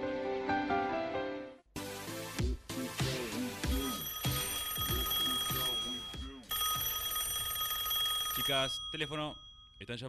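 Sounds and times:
music with a steady beat: 0:01.8 - 0:04.1
telephone ringing: 0:03.6 - 0:10.0.

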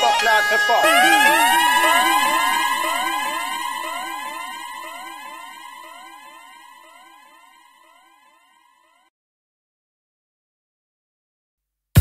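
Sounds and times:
electronic siren rising sweeps: 0:00.0 - 0:09.0
steady electronic tone: 0:00.0 - 0:09.0.

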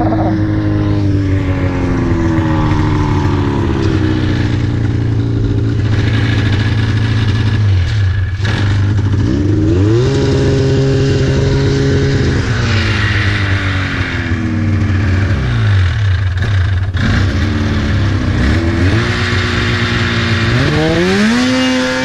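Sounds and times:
snowmobile engine running: 0:00.0 - 0:22.0.

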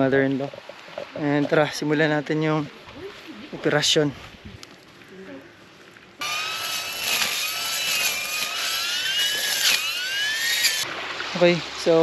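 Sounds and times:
string trimmer motor whining: 0:06.2 - 0:10.8.

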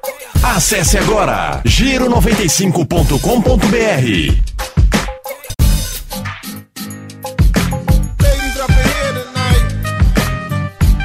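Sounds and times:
rapping over a beat: 0:00.0 - 0:04.5, 0:08.2 - 0:09.8
hip hop beat: 0:00.0 - 0:11.0.

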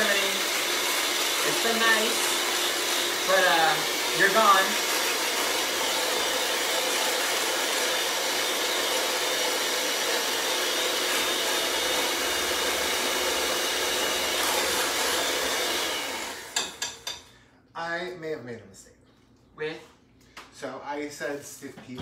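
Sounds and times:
electric mixer running: 0:00.0 - 0:17.0.

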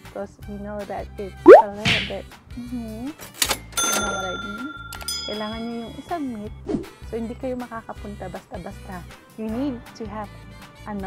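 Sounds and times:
cash register clack: 0:03.4 - 0:05.8
bell ringing high tones: 0:03.8 - 0:06.1.

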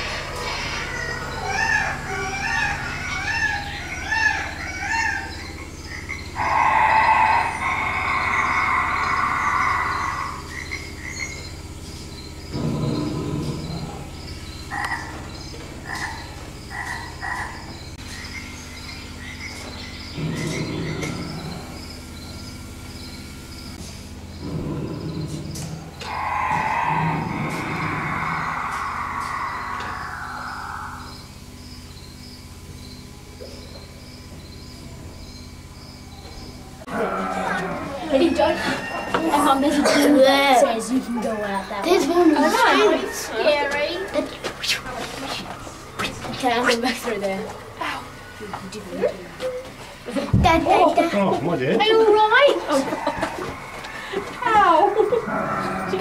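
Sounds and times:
long loud animal calls: 0:00.0 - 0:11.7, 0:12.3 - 0:18.0, 0:20.0 - 0:22.5, 0:24.4 - 0:31.6, 0:36.4 - 0:48.6, 0:51.8 - 0:56.0
croaking calls: 0:00.0 - 0:56.0
pulsing chorus of chirps: 0:00.0 - 0:56.0.

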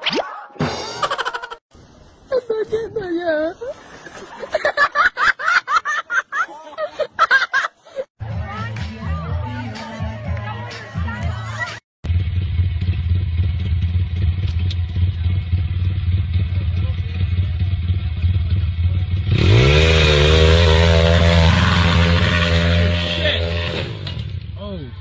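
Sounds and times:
dirt bike engine idling and revving: 0:12.0 - 0:25.0.

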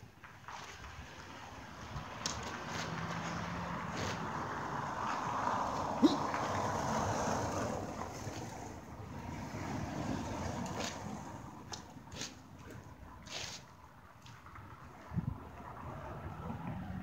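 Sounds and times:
rushing outdoor noise: 0:00.0 - 0:17.0.

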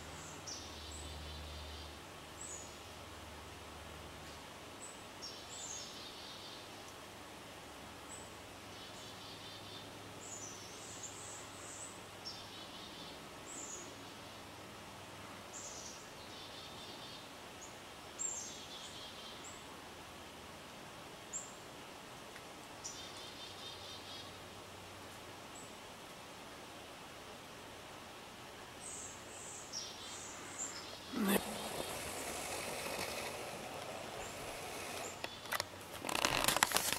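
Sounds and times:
outdoor background hiss: 0:00.0 - 0:36.9
outdoor rushing hiss: 0:26.0 - 0:36.9
small birds chirping: 0:28.8 - 0:36.9.

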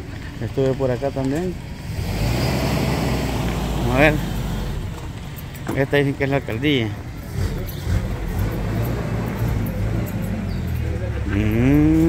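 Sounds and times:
road noise: 0:00.0 - 0:12.0
vehicle engine rumble: 0:00.0 - 0:12.0
person speaking: 0:10.2 - 0:12.0.

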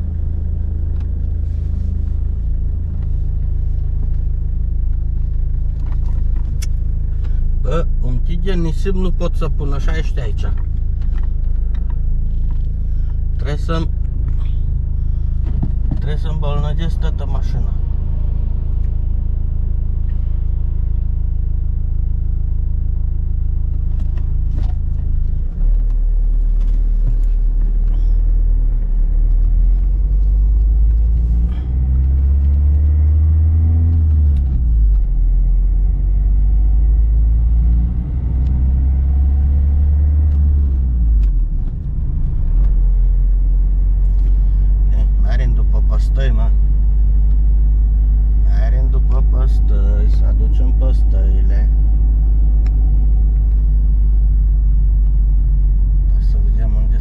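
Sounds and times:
car engine accelerating: 0:00.0 - 0:57.0
road rumble: 0:00.0 - 0:57.0.

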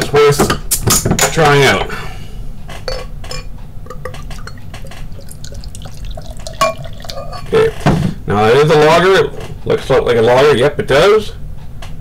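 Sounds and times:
glassy clink: 0:02.9 - 0:07.6
beer pouring into a glass: 0:03.4 - 0:07.7.

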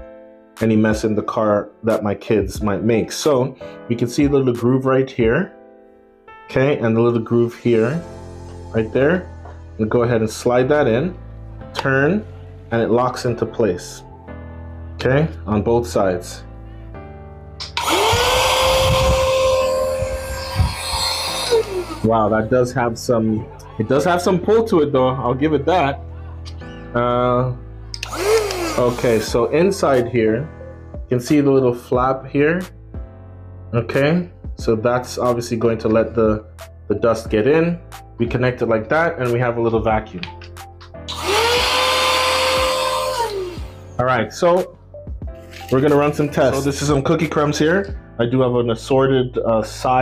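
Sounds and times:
handheld vacuum motor whining: 0:17.6 - 0:22.1, 0:28.0 - 0:29.4, 0:41.1 - 0:43.8.

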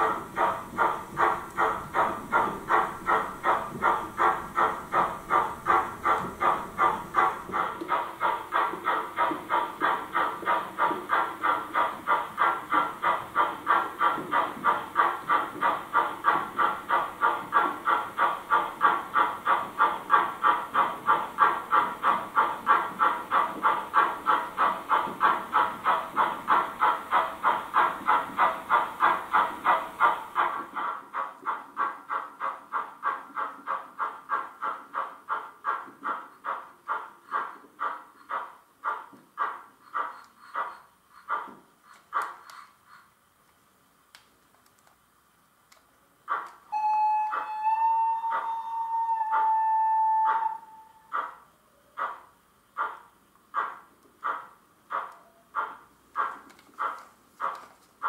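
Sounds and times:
model locomotive steam chuff: 0:00.0 - 0:43.3, 0:46.2 - 0:58.0.

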